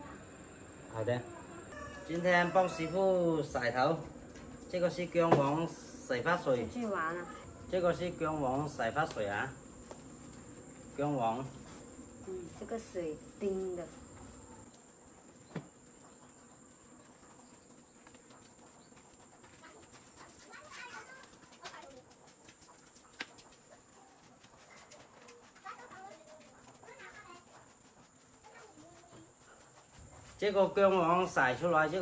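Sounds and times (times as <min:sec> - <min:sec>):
high insect drone: 0:00.0 - 0:20.3
faint distant calls: 0:00.0 - 0:32.0.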